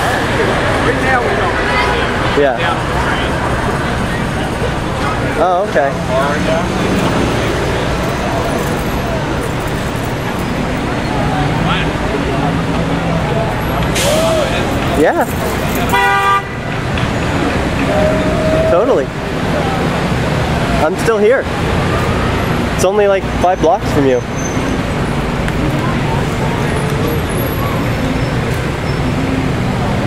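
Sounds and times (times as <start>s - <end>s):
background voices: 0.0s - 15.9s
street traffic rumble: 0.0s - 30.0s.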